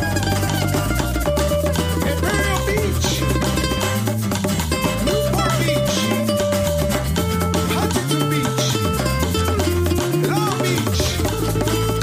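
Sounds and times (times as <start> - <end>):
recorded song with drums and guitar: 0.0 - 12.0.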